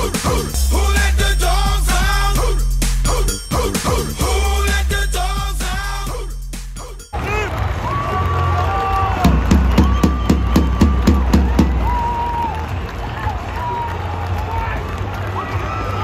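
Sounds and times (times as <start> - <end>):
loud music over pa system: 0.0 - 7.2
run of sharp beats: 0.0 - 14.3
stadium crowd cheering: 7.1 - 16.0.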